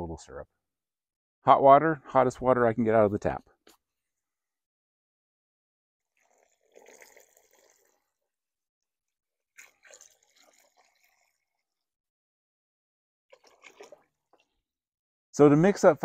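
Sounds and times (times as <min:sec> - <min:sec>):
water splashing into bucket: 0:06.2 - 0:08.0, 0:09.6 - 0:11.6, 0:13.3 - 0:14.6.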